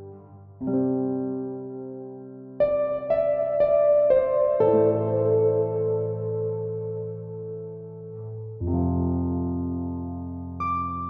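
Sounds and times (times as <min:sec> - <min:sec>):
gentle solo piano: 0:00.0 - 0:11.0.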